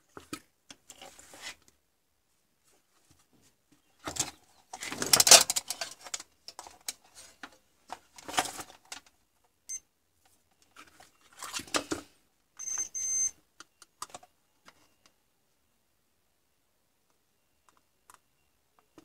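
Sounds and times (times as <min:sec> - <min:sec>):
circuit board clattering and rustling: 0:04.0 - 0:09.1
short high electronic beep: 0:12.6 - 0:13.3.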